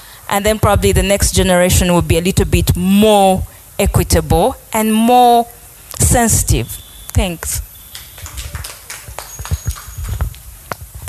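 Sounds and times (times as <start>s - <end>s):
scattered hand claps: 7.9s - 10.9s.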